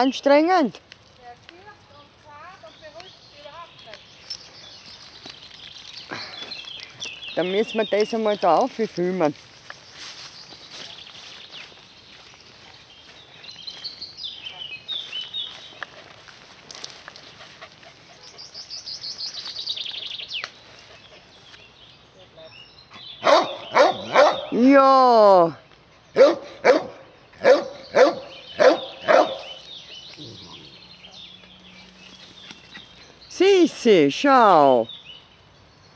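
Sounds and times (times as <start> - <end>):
dog barking: 23.2 - 24.6, 26.2 - 29.6.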